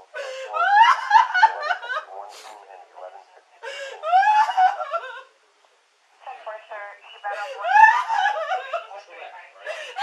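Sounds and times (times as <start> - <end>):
woman crying and wailing: 0.2 - 2.0, 3.6 - 5.3, 7.3 - 8.9.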